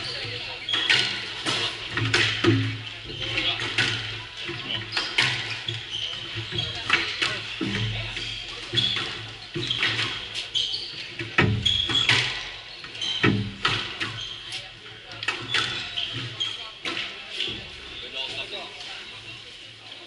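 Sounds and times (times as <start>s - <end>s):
shoe squeaks on wooden floor: 4.5s - 14.8s, 15.4s - 16.8s.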